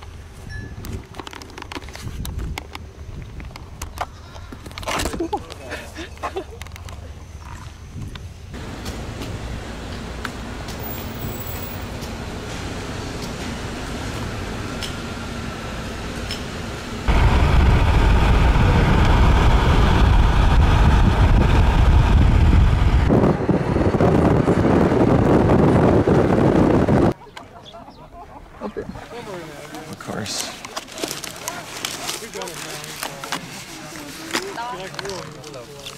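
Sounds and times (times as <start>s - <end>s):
road and wind noise inside a car: 6.7s - 27.2s.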